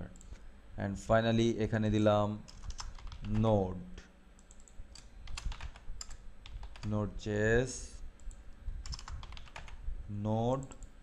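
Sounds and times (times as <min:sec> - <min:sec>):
keyboard keystroke clicks: 0:08.2 - 0:09.8.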